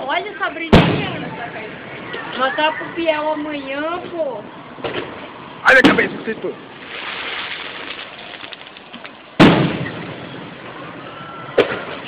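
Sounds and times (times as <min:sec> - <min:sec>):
firework shells bursting: 0:06.7 - 0:10.6.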